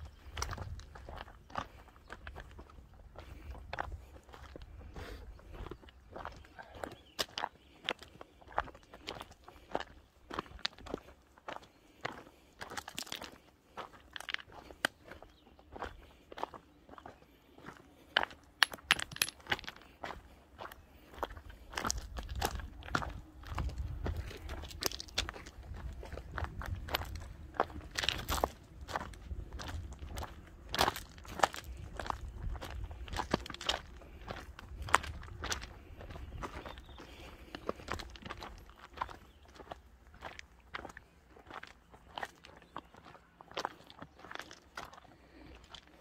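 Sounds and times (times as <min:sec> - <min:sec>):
footsteps crunching on stony path: 0:00.0 - 0:46.0
stones knocking together: 0:18.6 - 0:19.8.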